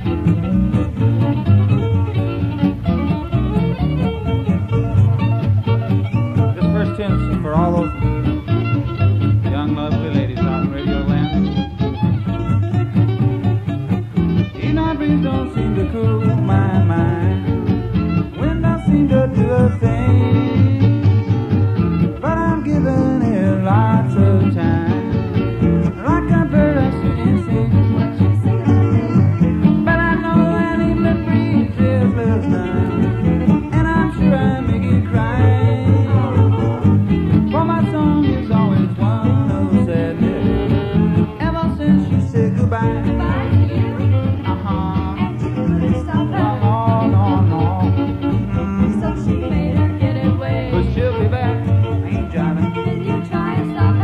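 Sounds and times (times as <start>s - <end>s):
swing band playing: 0.0s - 54.0s.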